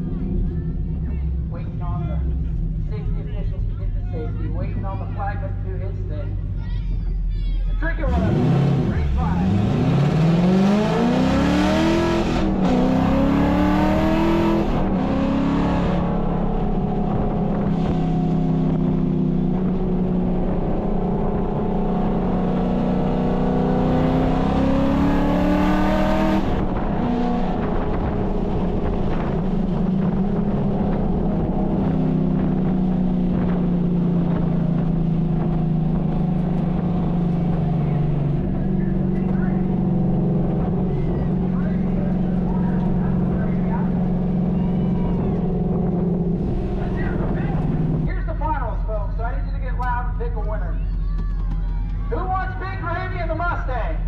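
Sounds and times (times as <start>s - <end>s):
car engine revving: 8.0s - 50.0s
wind noise: 25.7s - 38.7s, 42.2s - 48.1s.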